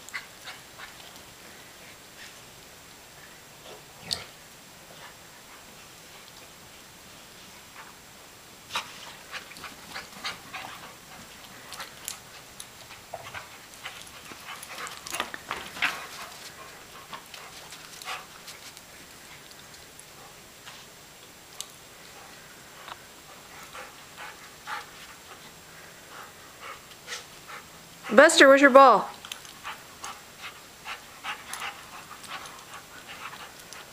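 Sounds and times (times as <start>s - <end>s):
dogs sniffing: 29.4s - 33.9s.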